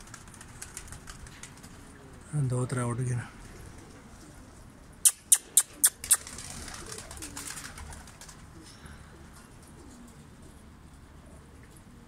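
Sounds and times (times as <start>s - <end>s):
pigeons cooing: 3.4s - 12.0s.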